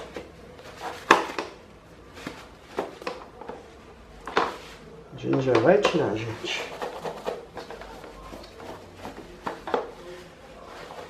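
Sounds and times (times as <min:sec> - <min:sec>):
paper rustling: 0:00.0 - 0:11.0
plastic parts knocking: 0:02.7 - 0:03.6, 0:05.3 - 0:09.9.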